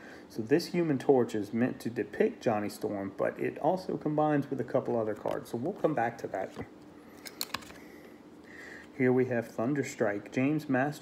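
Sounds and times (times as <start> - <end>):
trading cards clicking and rustling: 6.4 - 7.8.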